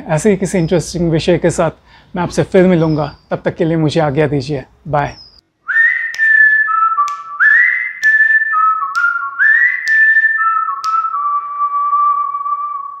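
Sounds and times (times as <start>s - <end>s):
whistled jingle tune: 5.7s - 13.0s.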